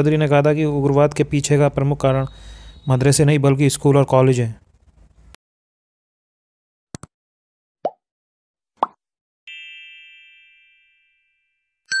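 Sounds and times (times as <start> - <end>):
bright bell-like chime: 9.5 - 12.0.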